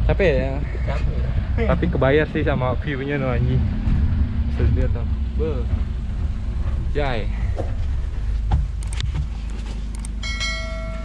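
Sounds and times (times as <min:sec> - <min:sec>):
vehicle engine and tyres rumbling: 0:00.0 - 0:11.0.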